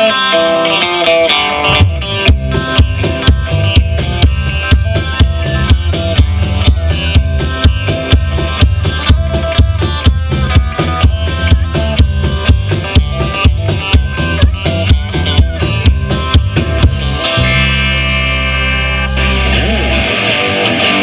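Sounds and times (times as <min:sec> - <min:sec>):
drum kit and bass beat: 0:00.0 - 0:21.0
electric guitar lead line: 0:00.0 - 0:21.0.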